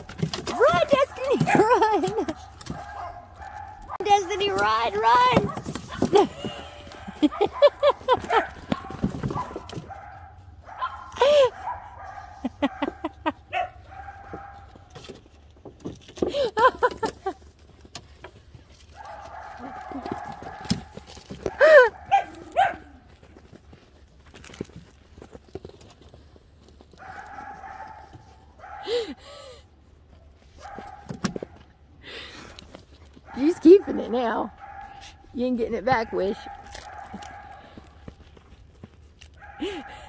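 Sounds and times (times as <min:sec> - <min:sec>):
puppies barking and yipping: 0:00.0 - 0:15.0, 0:18.8 - 0:23.5, 0:33.2 - 0:38.5, 0:39.2 - 0:40.0.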